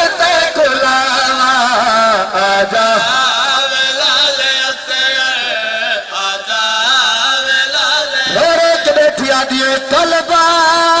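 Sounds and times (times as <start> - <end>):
group of men chanting a lament: 0.0 - 11.0.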